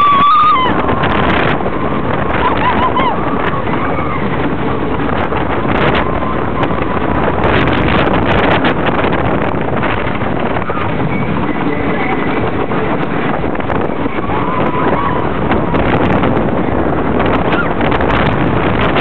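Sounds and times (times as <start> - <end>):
riders crying out: 0.0 - 4.5, 13.9 - 15.7
roller coaster clattering on wooden track: 0.0 - 19.0
wind on microphone: 0.0 - 19.0.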